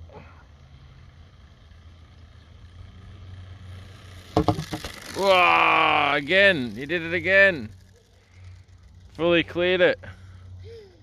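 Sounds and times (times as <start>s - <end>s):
bicycle rolling rumble: 0.0s - 11.0s
sharp knocks and clatters: 4.3s - 5.1s.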